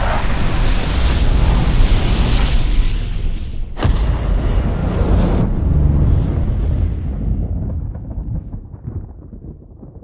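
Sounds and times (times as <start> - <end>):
explosion rumble: 3.8 - 10.0.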